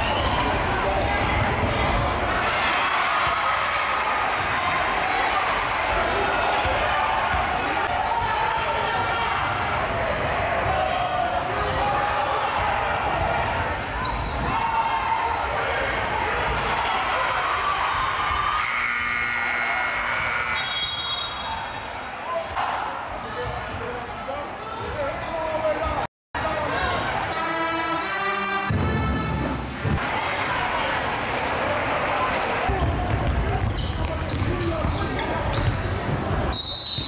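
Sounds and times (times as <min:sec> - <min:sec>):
crowd voices: 0:00.0 - 0:37.0
basketball bouncing on court: 0:06.6 - 0:07.6, 0:32.7 - 0:36.4
scoreboard horn: 0:18.6 - 0:21.0, 0:27.3 - 0:29.7.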